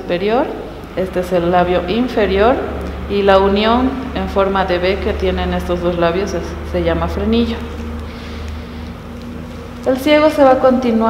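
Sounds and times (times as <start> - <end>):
low buzzing hum: 0.0 - 11.0.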